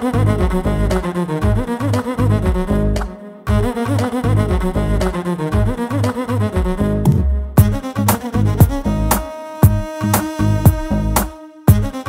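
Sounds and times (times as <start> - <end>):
background music with deep bass: 0.0 - 12.0.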